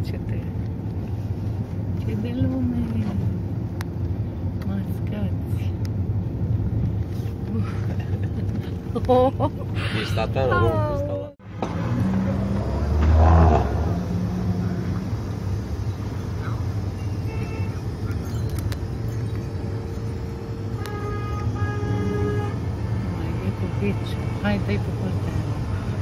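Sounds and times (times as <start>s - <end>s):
car engine and tyres rumbling: 0.0s - 26.0s.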